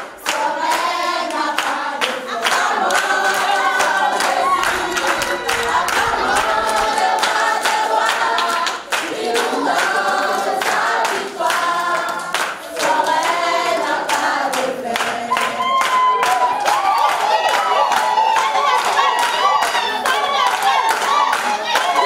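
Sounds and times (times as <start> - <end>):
congregation singing unaccompanied: 0.0 - 22.0
rhythmic hand-clapping: 0.0 - 22.0.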